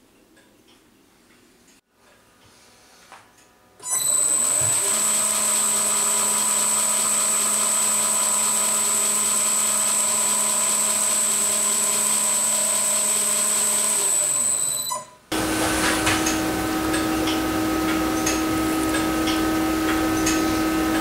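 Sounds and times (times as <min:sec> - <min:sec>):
lathe running with high whine: 0:04.0 - 0:21.0.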